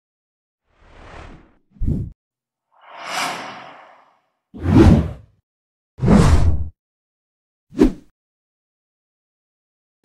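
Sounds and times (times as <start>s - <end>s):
airy whoosh: 2.8s - 4.2s.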